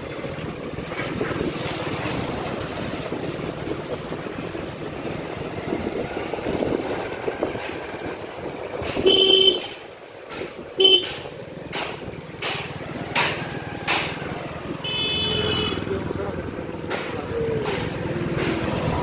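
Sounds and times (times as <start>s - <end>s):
steady riding noise: 0.0s - 19.0s
sharp knocks: 8.7s - 14.4s, 16.8s - 19.0s
vehicle horn honking: 9.0s - 9.8s, 10.8s - 11.2s, 14.8s - 15.9s.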